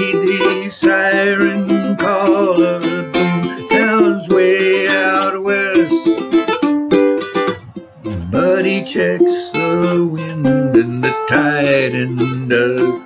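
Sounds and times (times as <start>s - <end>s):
man singing: 0.0s - 6.6s, 8.0s - 13.0s
ukulele strumming: 0.0s - 13.0s.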